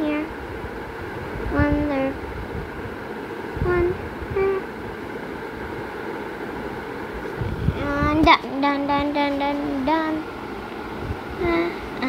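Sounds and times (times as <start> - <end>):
low rumble and hiss: 0.0 - 12.0.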